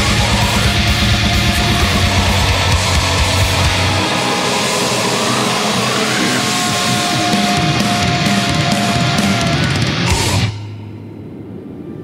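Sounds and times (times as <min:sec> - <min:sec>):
distorted noise in heavy metal: 0:00.0 - 0:12.0.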